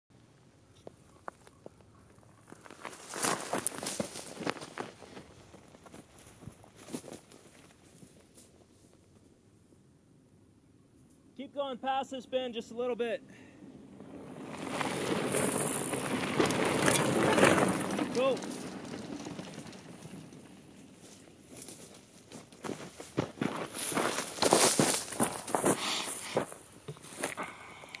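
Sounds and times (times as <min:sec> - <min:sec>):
crunching on gravel and brush: 0:00.8 - 0:09.2, 0:14.0 - 0:27.7.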